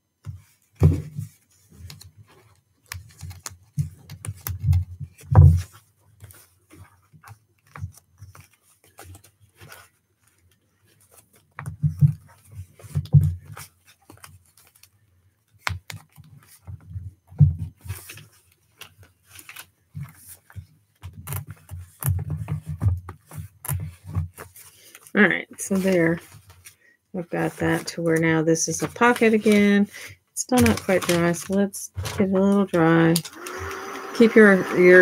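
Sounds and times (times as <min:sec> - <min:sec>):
paper rustling: 0:00.3 - 0:16.9, 0:17.7 - 0:26.8, 0:27.4 - 0:33.5.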